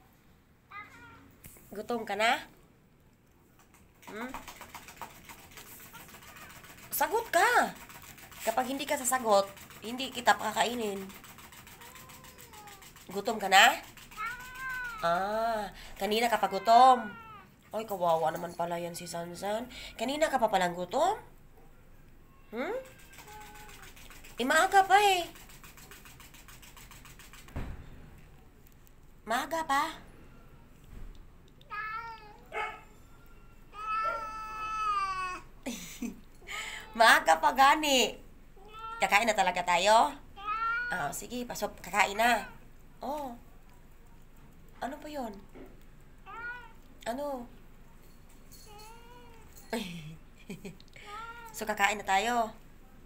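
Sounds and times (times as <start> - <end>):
cat meowing: 11.8 - 12.9, 14.1 - 15.1, 31.6 - 35.5.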